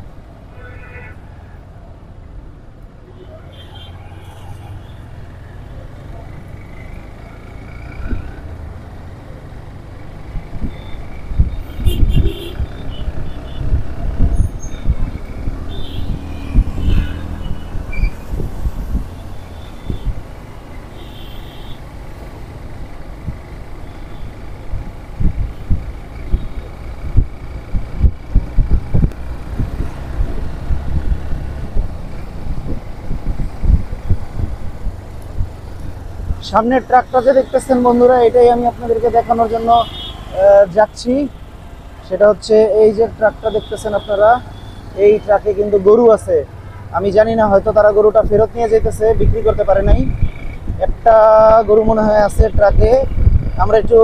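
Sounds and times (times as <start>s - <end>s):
road traffic: 0.0s - 54.0s
motorcycles passing: 4.3s - 21.0s, 21.9s - 54.0s
wind rumbling on microphone: 10.4s - 20.5s, 22.8s - 23.6s, 24.6s - 36.6s, 47.7s - 54.0s.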